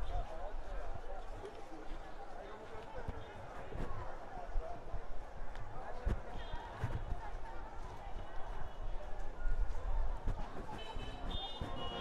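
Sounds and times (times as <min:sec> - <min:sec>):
passers-by talking: 0:00.0 - 0:12.0.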